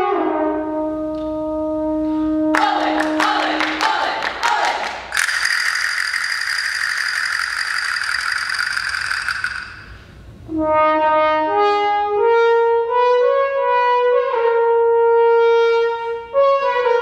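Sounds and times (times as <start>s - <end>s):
sharp claps: 2.6s - 10.0s
loud bright sustained tone: 2.6s - 10.2s
castanet-like clicks: 5.1s - 9.9s.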